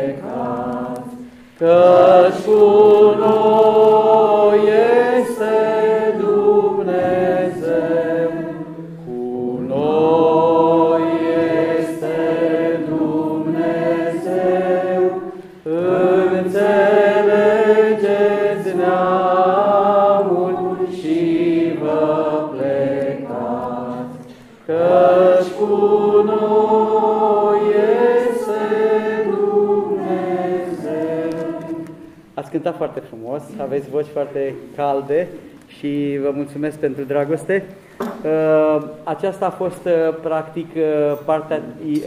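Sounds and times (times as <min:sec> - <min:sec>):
congregation singing a hymn: 0:00.0 - 0:37.0.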